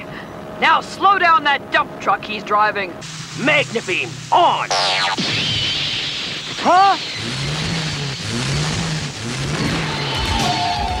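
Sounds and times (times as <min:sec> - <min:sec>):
steady high tone: 0:03.4 - 0:09.2
cartoon truck engine revving: 0:03.5 - 0:11.0.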